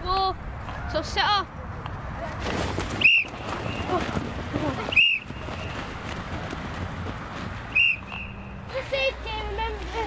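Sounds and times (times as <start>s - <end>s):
sports whistle blast: 7.8s - 8.5s.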